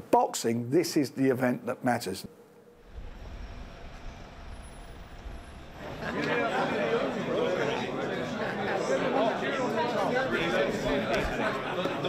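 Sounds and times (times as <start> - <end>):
city street traffic rumble: 2.3 - 8.4.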